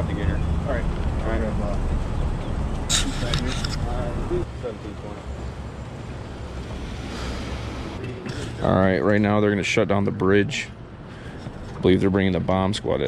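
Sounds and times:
distant voices talking: 0.0s - 13.0s
low outdoor rumble: 0.0s - 13.0s
short hiss: 2.9s - 3.7s.

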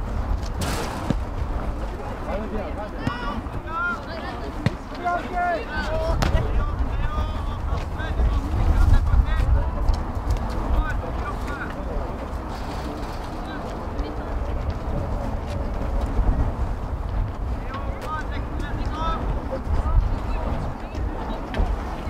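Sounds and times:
steady low rumble: 0.0s - 22.0s
players and spectators calling out: 2.6s - 7.6s.

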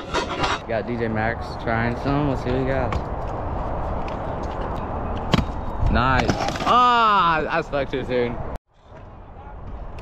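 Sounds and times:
scooter wheels rolling on concrete: 1.8s - 7.0s.

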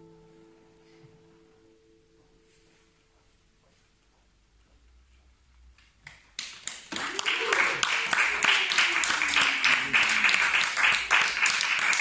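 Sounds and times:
audience clapping: 6.1s - 12.0s.

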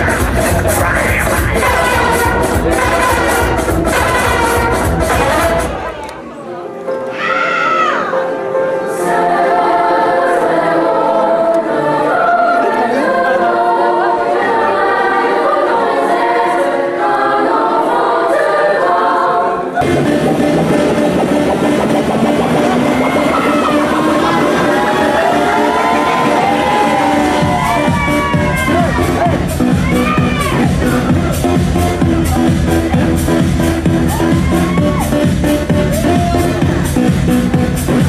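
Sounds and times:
rock band playing: 0.0s - 5.8s
voices singing: 0.0s - 5.8s, 8.8s - 20.4s.

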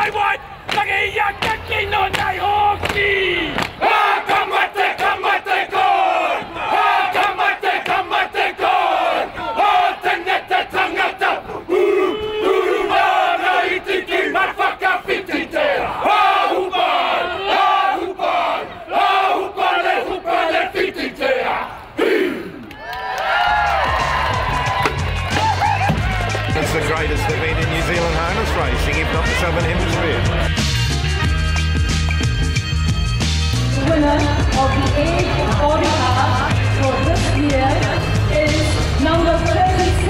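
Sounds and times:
men shouting chant in unison: 0.0s - 22.6s
rhythmic slaps and stamps: 0.7s - 3.8s
music with bass line: 23.5s - 40.0s.

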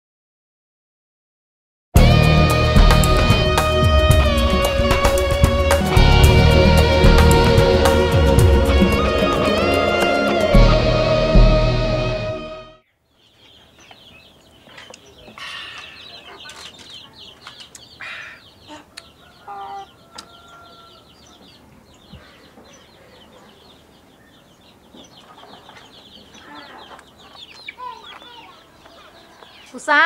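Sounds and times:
chickens clucking: 13.3s - 29.9s.

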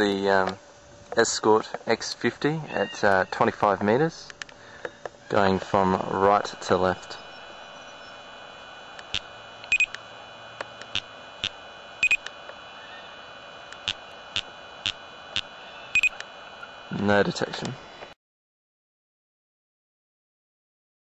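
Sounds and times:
steady hiss: 0.0s - 18.2s
sharp clicks: 8.9s - 12.6s, 13.6s - 16.3s
speed gun double beeps: 9.1s - 10.0s, 11.4s - 12.3s, 16.0s - 16.2s.

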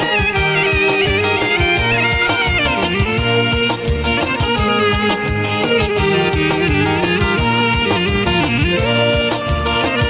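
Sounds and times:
clarinet melody: 0.0s - 10.0s
keyboard: 0.0s - 10.0s
steady drum beat: 0.0s - 10.0s.

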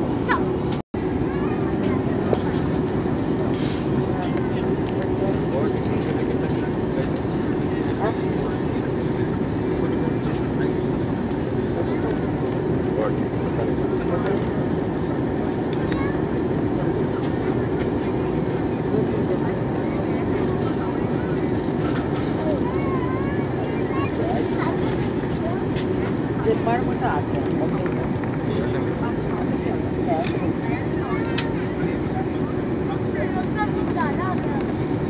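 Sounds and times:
jet airliner cabin roar: 0.0s - 35.0s.

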